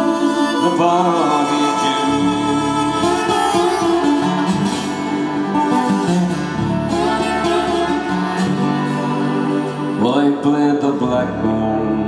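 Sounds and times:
concertina sustained notes: 0:00.0 - 0:11.9
acoustic guitar strummed: 0:00.0 - 0:12.0.

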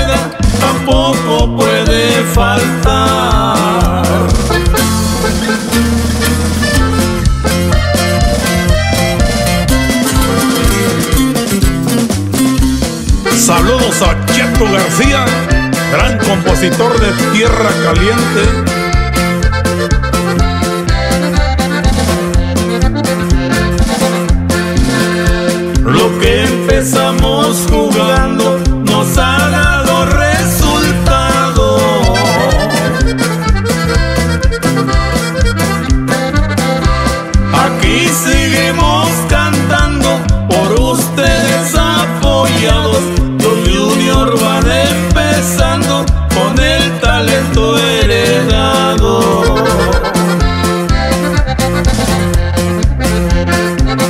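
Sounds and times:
accordion: 0:00.0 - 0:54.0
electric bass: 0:00.0 - 0:54.0
guitar strumming: 0:00.0 - 0:54.0
steady beat: 0:00.0 - 0:54.0.

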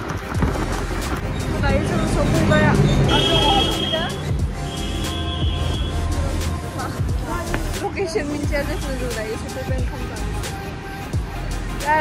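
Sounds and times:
low vehicle rumble: 0:00.2 - 0:10.6
people's voices: 0:01.1 - 0:10.8.

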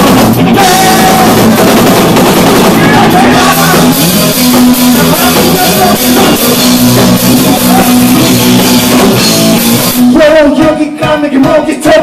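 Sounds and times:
man singing into a microphone: 0:00.0 - 0:01.8, 0:02.8 - 0:06.7, 0:07.4 - 0:08.4, 0:10.0 - 0:12.0
electric guitar: 0:00.0 - 0:11.0
drum kit: 0:00.0 - 0:12.0.

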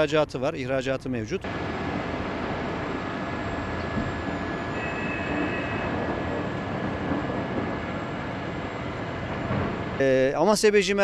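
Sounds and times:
outdoor rumbling with hiss: 0:00.0 - 0:11.0
faint thin whine: 0:02.9 - 0:08.8.

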